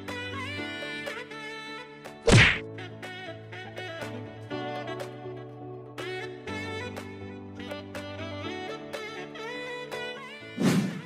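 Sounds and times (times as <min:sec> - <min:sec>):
jazz music with saxophone: 0:00.0 - 0:11.0
loud whack sound effect: 0:02.3 - 0:02.6, 0:10.6 - 0:11.0.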